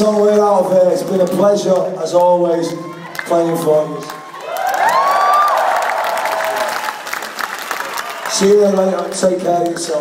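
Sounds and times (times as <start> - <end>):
crowd applauding and cheering: 1.1 - 10.0.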